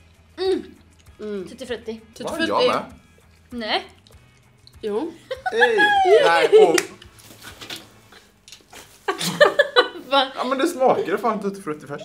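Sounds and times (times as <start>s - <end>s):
person's loud wordless reaction: 5.4s - 6.8s.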